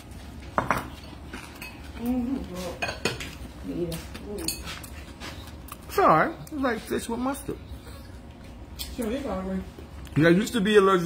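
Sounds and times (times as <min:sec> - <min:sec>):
cutlery clinking against plate: 0:00.6 - 0:02.0.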